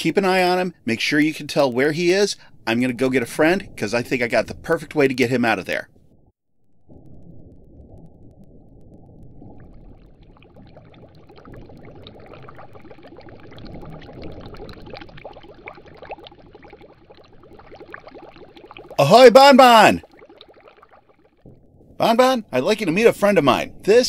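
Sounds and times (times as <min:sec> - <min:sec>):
low underwater rumble: 0:05.9 - 0:19.0, 0:20.0 - 0:23.9
water bubbling and gurgling: 0:06.7 - 0:23.0.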